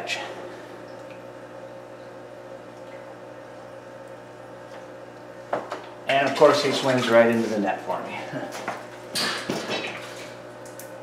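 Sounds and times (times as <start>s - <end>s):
aquarium equipment humming: 0.0s - 11.0s.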